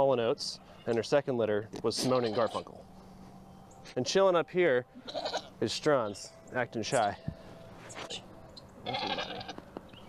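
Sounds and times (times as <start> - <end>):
young goat bleating: 2.0 - 2.7, 5.0 - 5.6, 8.8 - 9.6.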